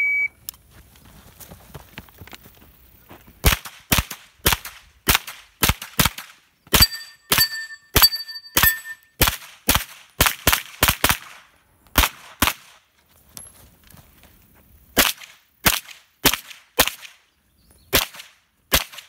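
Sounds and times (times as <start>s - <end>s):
steel targets ringing: 6.7s - 9.1s.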